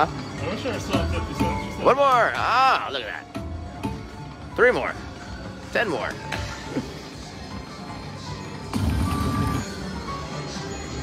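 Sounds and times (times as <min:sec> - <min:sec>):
slot machine game music: 0:00.0 - 0:11.0.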